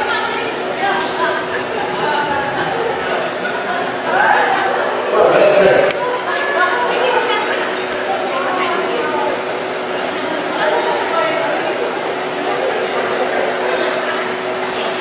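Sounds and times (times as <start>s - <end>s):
indistinct chatter of people: 0.0s - 15.0s
steady hum: 0.0s - 15.0s.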